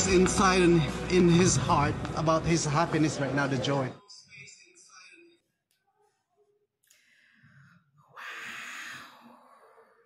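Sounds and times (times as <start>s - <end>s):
woman exhaling breathily: 8.0s - 10.0s.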